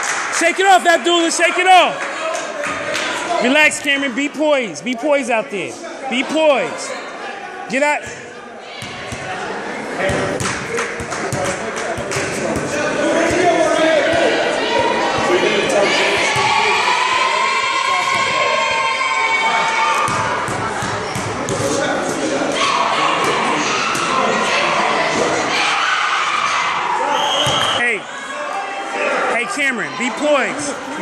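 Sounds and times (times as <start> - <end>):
many voices chattering: 0.4 - 31.0.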